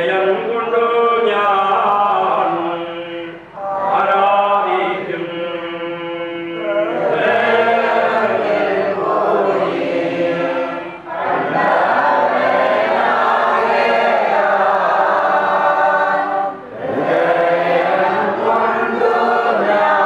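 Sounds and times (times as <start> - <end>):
group chanting: 1.3 - 20.0.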